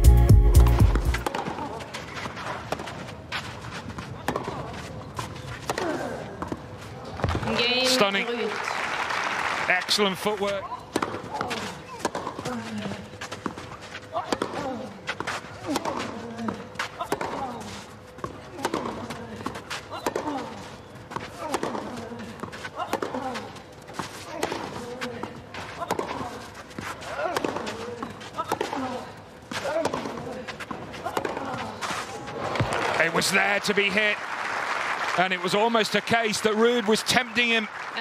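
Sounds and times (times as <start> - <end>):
racquets striking tennis ball: 0.6 - 6.6, 10.4 - 34.0.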